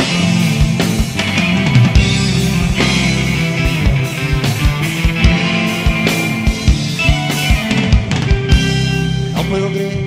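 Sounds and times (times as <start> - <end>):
bass guitar: 0.0 - 10.0
electric guitar: 0.0 - 10.0.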